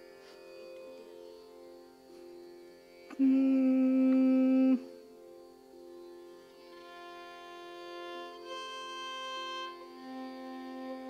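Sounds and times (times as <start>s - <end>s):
tanpura drone: 0.0s - 11.0s
long held sung note: 3.1s - 5.3s.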